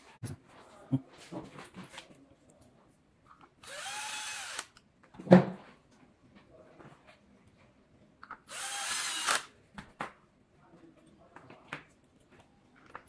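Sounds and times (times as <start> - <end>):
electric screwdriver motor whine: 3.6 - 4.7, 8.5 - 9.5.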